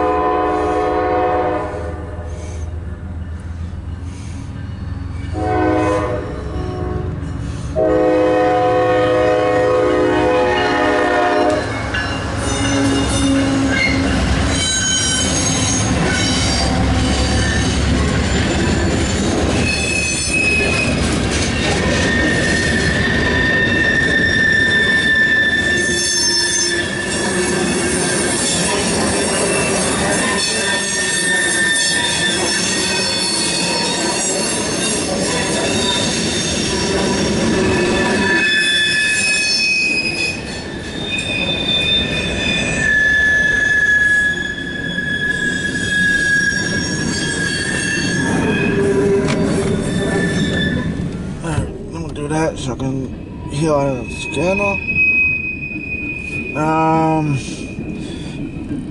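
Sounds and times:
train horn: 0.0s - 2.4s, 5.3s - 7.2s, 7.8s - 11.7s
rumble of train cars: 0.0s - 58.9s
train wheel flanges squealing: 2.3s - 7.9s, 10.5s - 58.9s.

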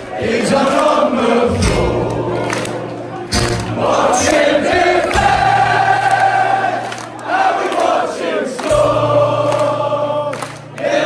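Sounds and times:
crowd singing in unison: 0.0s - 11.0s
live band music: 1.6s - 5.8s.

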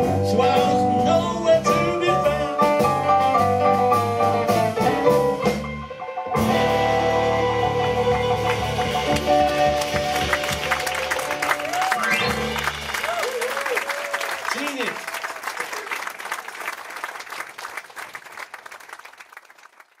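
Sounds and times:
live band playing: 0.0s - 15.6s
audience applause: 8.2s - 20.0s.

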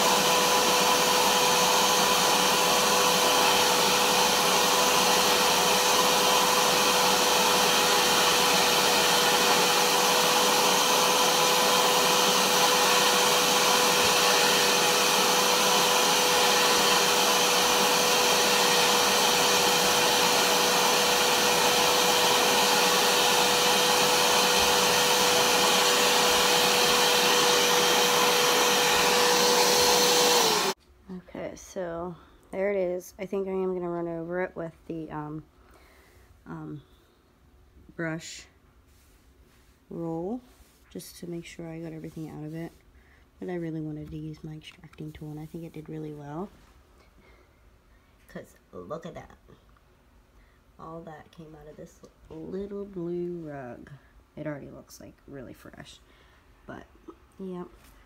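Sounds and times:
carpet cleaner suction motor whining: 0.0s - 30.8s.

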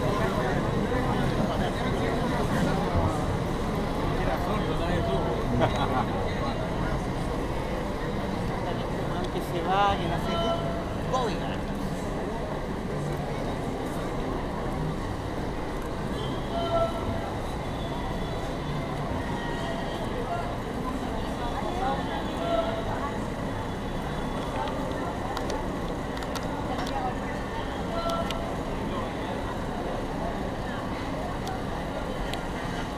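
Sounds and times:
crowd chatter: 0.0s - 32.9s
people's voices: 0.0s - 32.9s.

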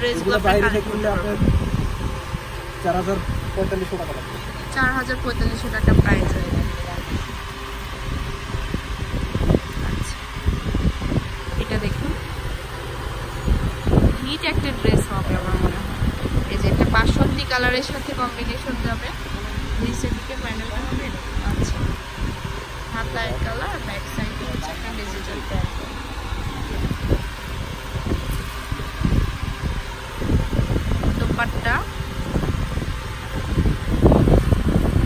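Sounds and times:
indistinct voices talking: 0.0s - 35.0s
low background rumble: 0.0s - 35.0s.

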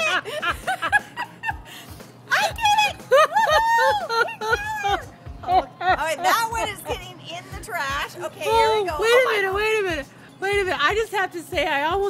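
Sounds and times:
woman laughing: 0.0s - 7.1s.

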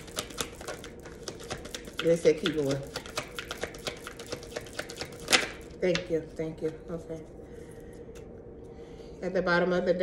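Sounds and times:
card rustle: 0.0s - 5.8s
playing cards being shuffled: 0.0s - 5.8s.

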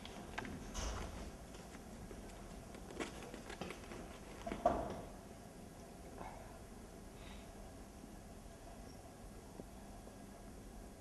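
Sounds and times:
footsteps on stage floor: 0.0s - 4.9s.

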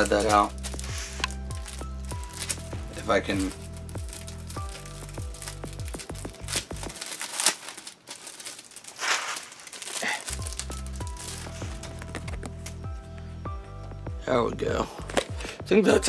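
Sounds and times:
background music with bass: 0.0s - 7.0s, 10.3s - 16.0s
plastic packaging crinkling: 0.0s - 12.8s.

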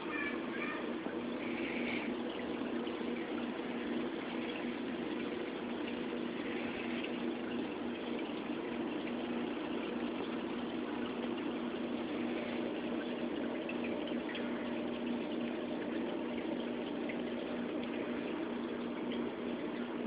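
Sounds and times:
bubbling moving water: 0.0s - 20.0s
low pump hum: 0.0s - 20.0s.

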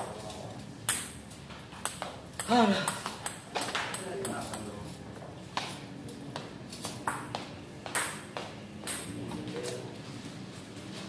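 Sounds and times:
table tennis balls clicking: 0.0s - 4.8s, 6.4s - 9.8s.

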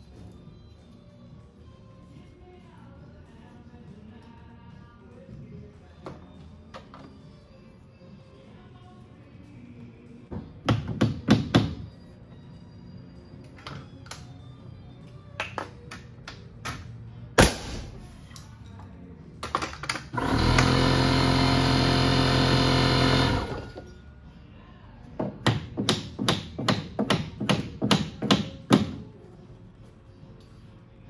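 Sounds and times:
power tool motor running: 20.2s - 23.8s.

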